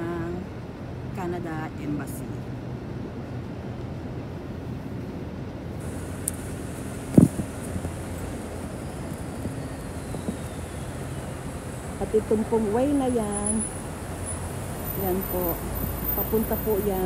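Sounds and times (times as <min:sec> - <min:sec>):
traffic engine rumble: 0:00.0 - 0:17.0.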